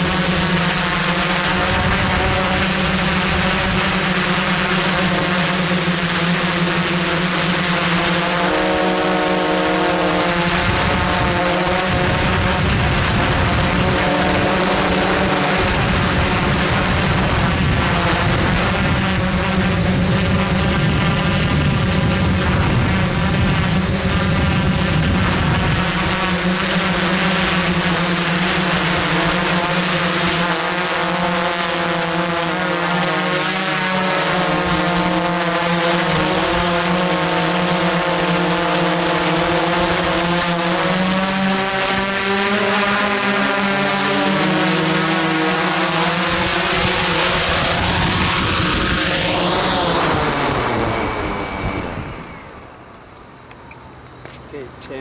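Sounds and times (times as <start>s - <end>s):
drone motors humming: 0.0s - 55.0s.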